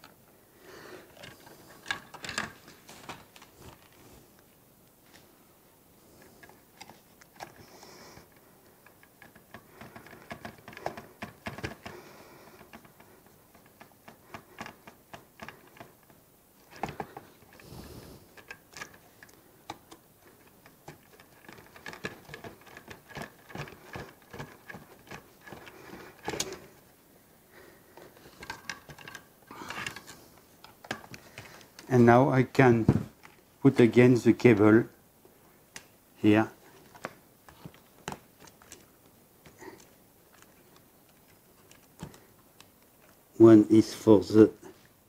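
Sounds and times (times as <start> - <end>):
plastic case being handled: 12.6 - 17.7, 18.3 - 26.9.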